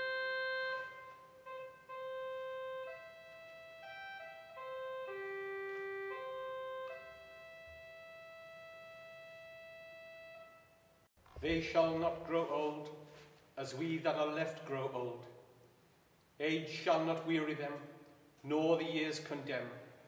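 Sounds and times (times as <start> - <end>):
organ playing slow melody: 0.0 - 10.9.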